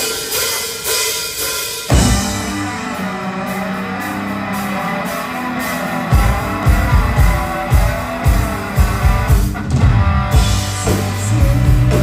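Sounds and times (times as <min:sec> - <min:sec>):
drum kit beat: 0:00.0 - 0:12.0
electric guitars: 0:01.9 - 0:12.0.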